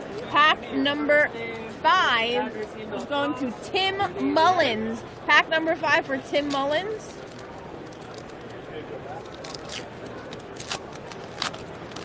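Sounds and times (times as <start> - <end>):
background chatter: 0.0 - 12.0
wrapper tearing crackles: 7.2 - 8.6, 9.2 - 12.0.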